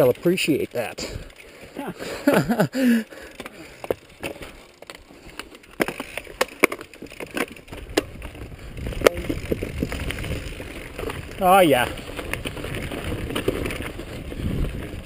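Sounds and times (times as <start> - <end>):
mountain bike rattling: 0.0 - 15.0
clicks and clunks from bike: 1.0 - 15.0
low rumble of tyres: 3.7 - 15.0
wind on microphone: 7.8 - 15.0.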